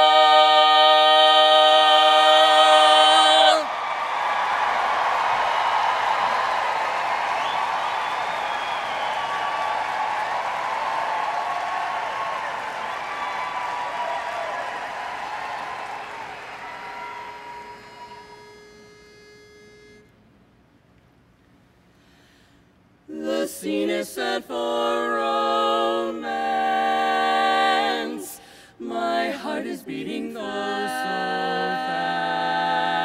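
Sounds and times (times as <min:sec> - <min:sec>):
women singing held chord: 0:00.0 - 0:03.7, 0:23.1 - 0:33.0
audience applause and cheering: 0:03.2 - 0:18.5
pitch pipe note: 0:16.8 - 0:20.1.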